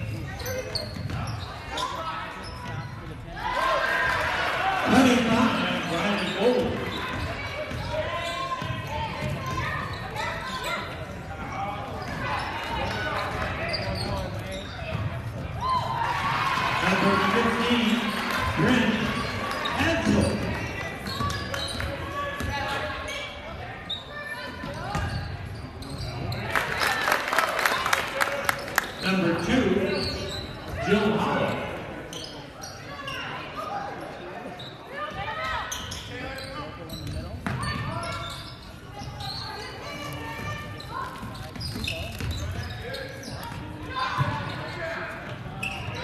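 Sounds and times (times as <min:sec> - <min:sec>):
indistinct shouting and chatter: 0:00.0 - 0:46.0.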